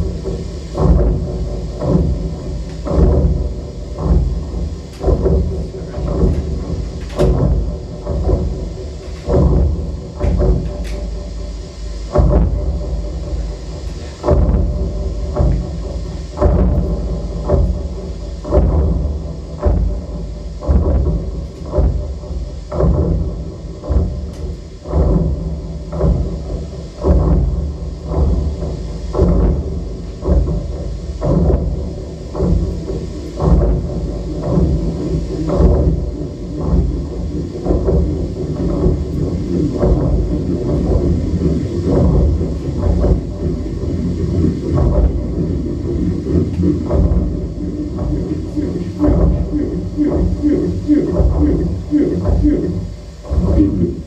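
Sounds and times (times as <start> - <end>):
experimental electronic music: 0.0 - 54.0.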